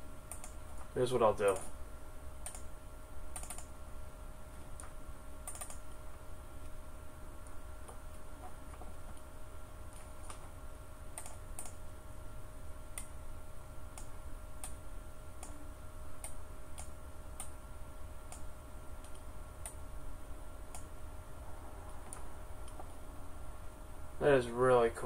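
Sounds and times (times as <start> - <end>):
low electrical hum: 0.0 - 25.0
computer mouse clicking: 0.3 - 0.9, 2.4 - 2.7, 3.3 - 3.7, 4.8 - 6.0, 11.2 - 11.8, 13.9 - 14.8, 16.2 - 17.6, 18.3 - 19.8, 20.7 - 20.9.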